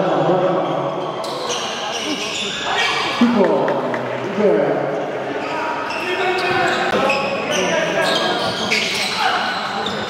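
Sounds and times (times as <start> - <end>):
players' voices and shouts: 0.3 - 10.0.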